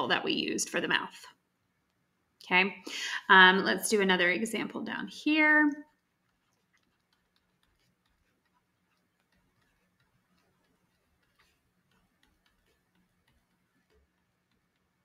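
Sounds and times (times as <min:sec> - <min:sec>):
stylus tapping on tablet: 0:05.8 - 0:15.0.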